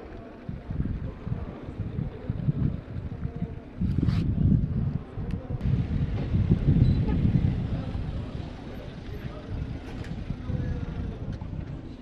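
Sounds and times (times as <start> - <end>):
faint voices: 0.0 - 12.0
wind rumbling on microphone: 0.0 - 12.0.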